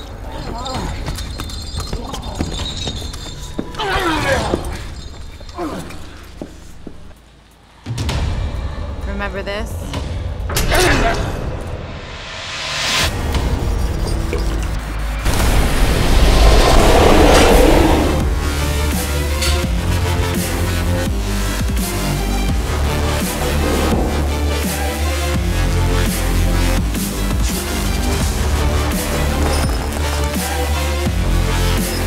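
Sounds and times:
low rumbling drone: 0:13.0 - 0:28.9
loud rushing rumbling noise: 0:14.8 - 0:20.3.

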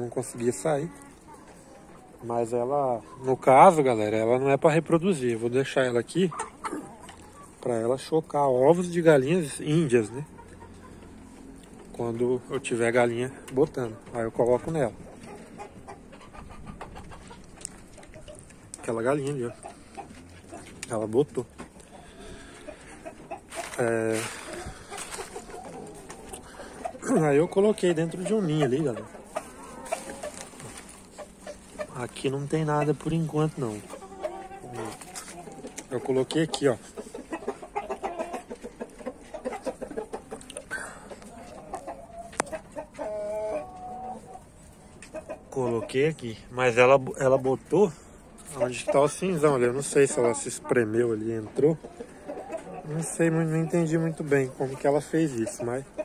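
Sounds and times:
chickens clucking: 0:00.0 - 0:56.0.

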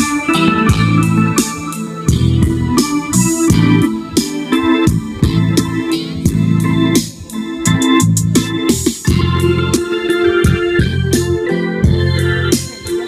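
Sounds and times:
keyboard organ chords with bass: 0:00.0 - 0:13.0.

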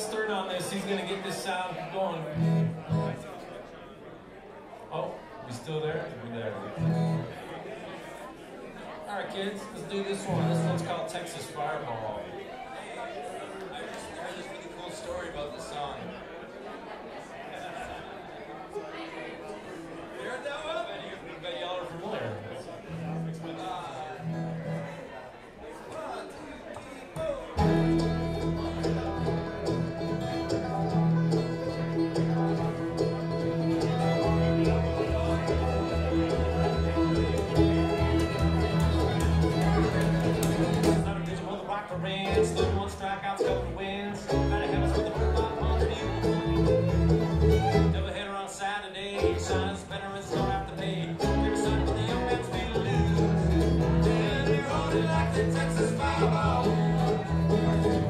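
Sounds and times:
acoustic guitar: 0:00.0 - 0:03.6, 0:04.9 - 0:07.5, 0:09.3 - 0:11.6, 0:22.2 - 0:25.2, 0:27.2 - 0:58.0
banjo: 0:00.0 - 0:03.6, 0:05.6 - 0:08.3, 0:09.5 - 0:11.5, 0:27.2 - 0:58.0
mandolin: 0:00.0 - 0:03.6, 0:04.9 - 0:07.7, 0:09.6 - 0:11.6, 0:22.8 - 0:25.2, 0:27.2 - 0:58.0
upright bass plucking: 0:27.6 - 0:48.2, 0:49.1 - 0:58.0
fiddle: 0:27.6 - 0:48.3.

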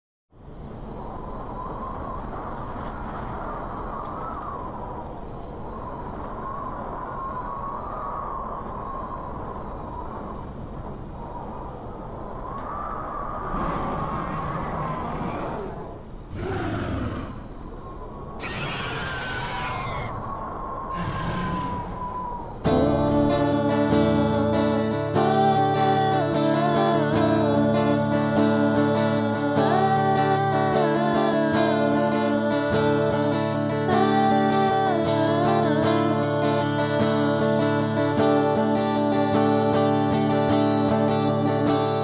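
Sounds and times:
wavering whistle-like tone: 0:00.9 - 0:10.6, 0:12.4 - 0:42.0.

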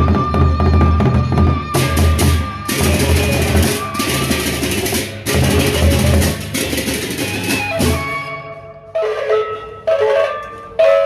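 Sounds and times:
sustained gamelan melody: 0:00.0 - 0:11.0.

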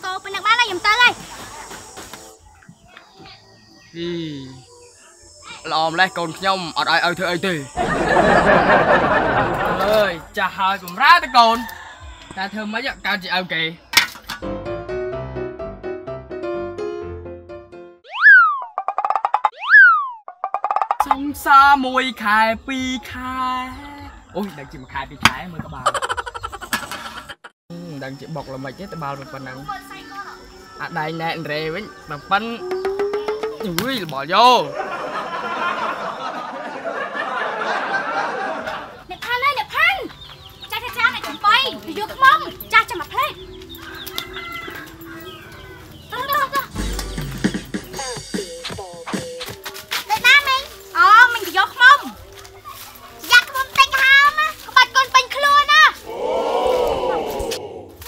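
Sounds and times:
rooster crowing: 0:11.1 - 0:12.8, 0:43.8 - 0:45.9, 0:56.1 - 0:57.9
cartoon whistle glide: 0:18.0 - 0:18.8, 0:19.5 - 0:20.3.

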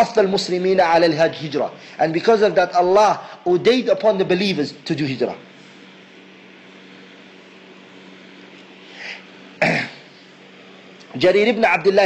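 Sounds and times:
low background hum: 0:00.0 - 0:12.0
faint breath: 0:08.8 - 0:09.3
man clearing throat: 0:09.6 - 0:10.1.

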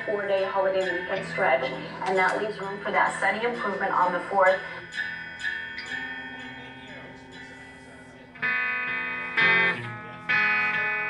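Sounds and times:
electric guitar picked notes: 0:00.0 - 0:11.0.

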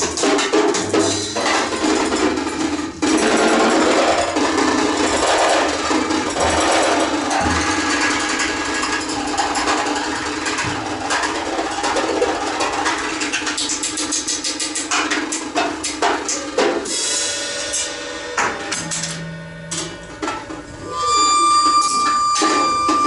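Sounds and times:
improvised clarinet cello and drums: 0:19.7 - 0:23.0.

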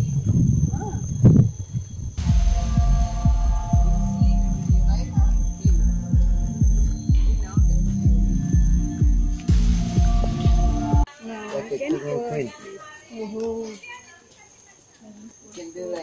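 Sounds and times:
footsteps thumping: 0:02.2 - 0:11.1.

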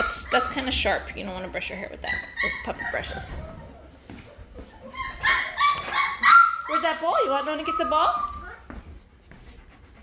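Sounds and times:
puppies whining: 0:00.0 - 0:09.6.

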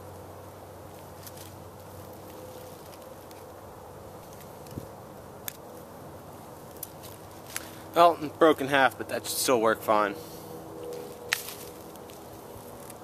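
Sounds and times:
steady low hiss: 0:00.0 - 0:13.0.

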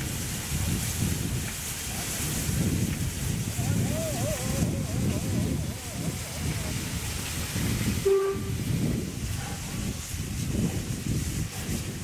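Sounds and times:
wind buffeting microphone: 0:00.0 - 0:12.0
steam locomotive whistle: 0:08.0 - 0:08.6.

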